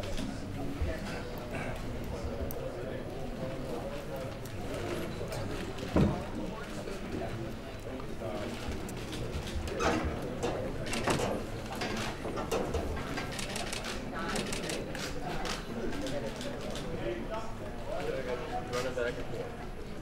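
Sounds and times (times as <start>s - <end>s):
crowd chatter: 0.0s - 20.0s.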